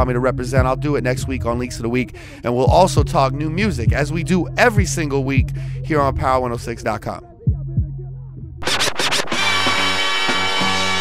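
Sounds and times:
turntable record scratches: 8.6 - 11.0.

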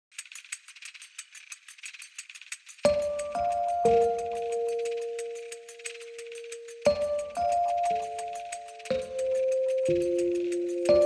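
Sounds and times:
light high-pitched rattling ticks: 0.1 - 11.0.

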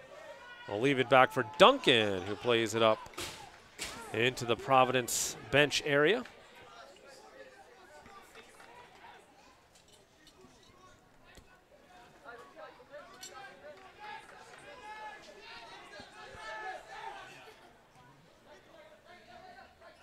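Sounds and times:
people calling out and chattering: 0.0 - 9.7.

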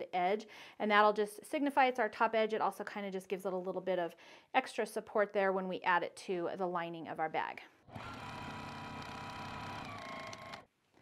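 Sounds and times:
sewing machine running: 7.9 - 10.7.

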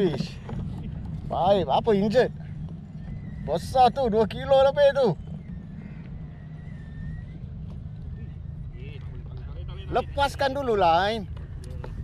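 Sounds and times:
low wind rumble on microphone: 0.0 - 12.0.

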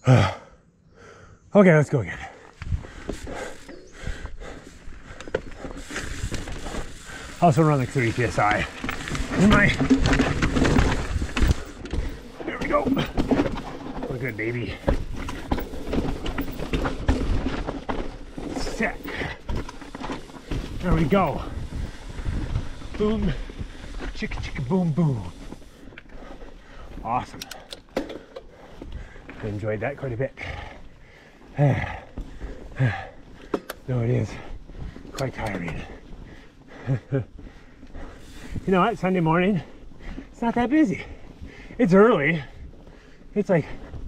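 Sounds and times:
person breathing hard: 0.0 - 1.5, 2.2 - 7.5, 25.4 - 29.4, 35.9 - 38.7
tyres rumbling on rock: 2.7 - 27.4
bike frame knocks and rattles: 5.3 - 23.8.

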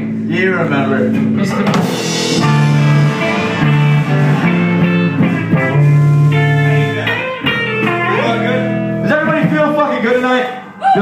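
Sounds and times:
electric guitar notes and chords: 0.0 - 11.0.

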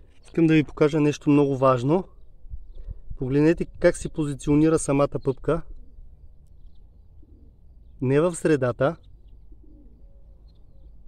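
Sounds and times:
dove cooing: 5.7 - 7.9, 9.1 - 11.0.

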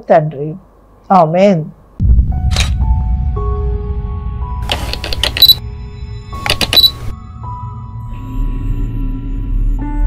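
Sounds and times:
deep bass drone: 2.0 - 4.7
camera shutter clicks: 4.6 - 5.6, 6.4 - 7.1.

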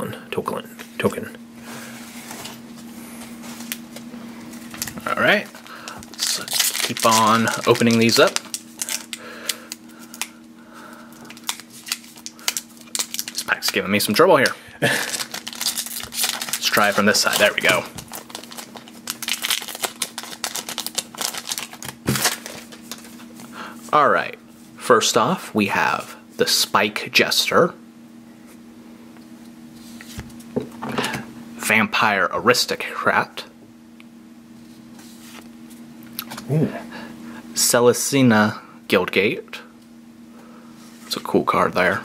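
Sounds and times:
steady low hum: 0.0 - 42.0
foil pack rustling: 4.5 - 14.2, 14.8 - 23.4.

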